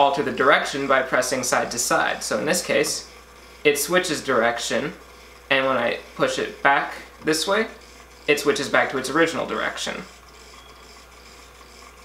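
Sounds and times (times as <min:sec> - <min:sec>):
turntable motor hum: 0:00.0 - 0:12.0.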